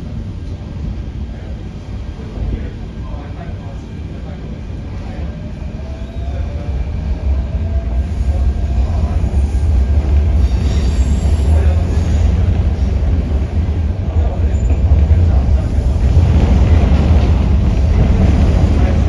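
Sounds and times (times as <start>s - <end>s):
train wheels rumbling: 0.0s - 19.0s.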